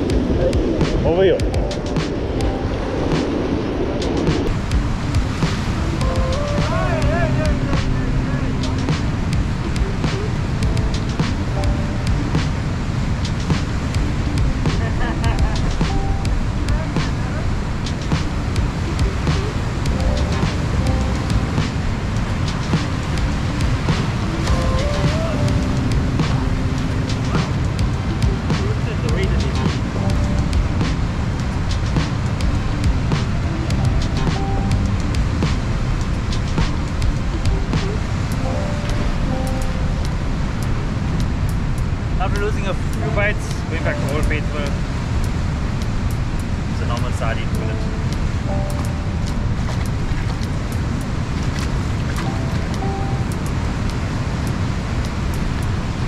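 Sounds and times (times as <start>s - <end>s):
surf breaking on rocks: 0.0s - 38.8s
faint background music: 0.0s - 56.0s
wind buffeting microphone: 0.0s - 56.0s.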